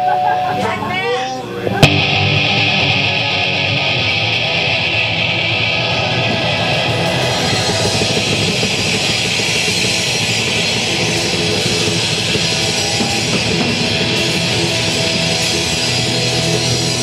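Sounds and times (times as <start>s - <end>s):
live rock band playing: 1.5s - 17.0s.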